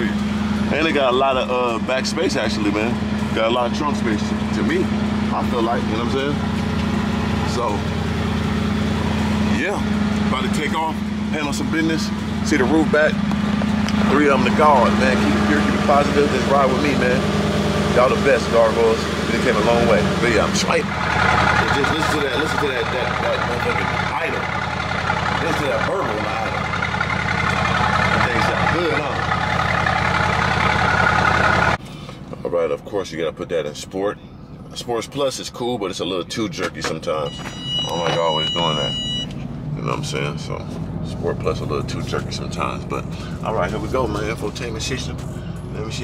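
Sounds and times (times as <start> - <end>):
car engine idling burble: 0.0 - 46.0.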